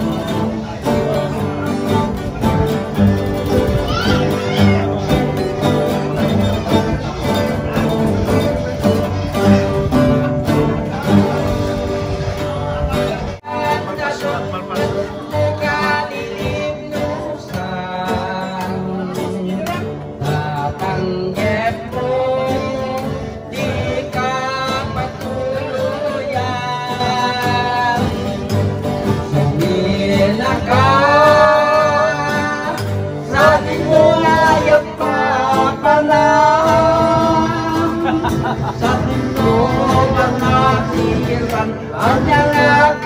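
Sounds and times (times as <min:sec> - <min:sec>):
man singing into microphone: 0:00.0 - 0:07.8, 0:08.6 - 0:43.0
string band strumming: 0:00.0 - 0:43.0.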